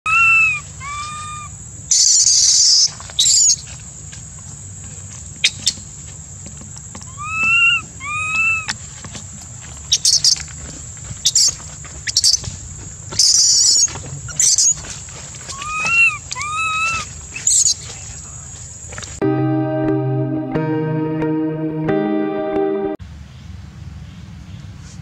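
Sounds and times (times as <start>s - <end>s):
baby monkey crying: 0.1s - 3.6s, 7.1s - 8.7s, 15.5s - 17.8s.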